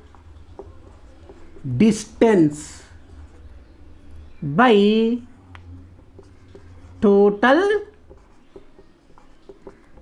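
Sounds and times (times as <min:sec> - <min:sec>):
marker writing on whiteboard: 0:00.0 - 0:03.8, 0:04.8 - 0:10.0.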